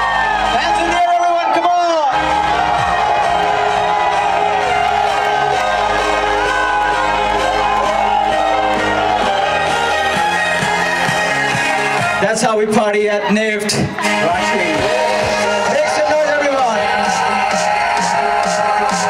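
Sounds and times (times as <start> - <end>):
crowd cheering and shouting: 0.0 - 19.0
electronic dance music through speakers: 0.0 - 19.0.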